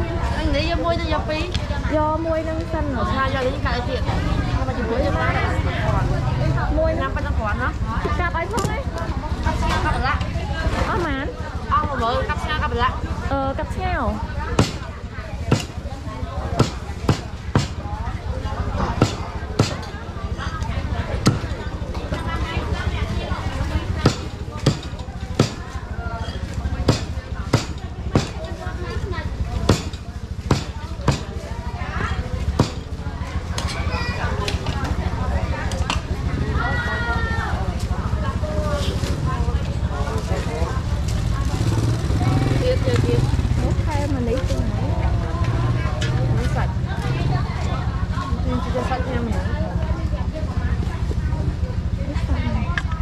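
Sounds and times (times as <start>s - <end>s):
people talking: 0.0s - 53.0s
cleaver chopping on wooden block: 14.6s - 14.8s, 15.5s - 15.7s, 16.6s - 17.8s, 19.0s - 19.8s, 24.0s - 25.6s, 26.8s - 28.4s, 29.7s - 31.3s, 32.6s - 32.8s.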